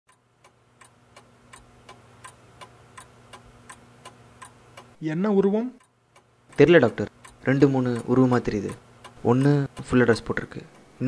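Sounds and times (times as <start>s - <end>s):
clock ticking: 0.1s - 5.0s, 5.8s - 10.8s
low steady hum: 0.1s - 11.0s
man's voice: 6.6s - 10.7s.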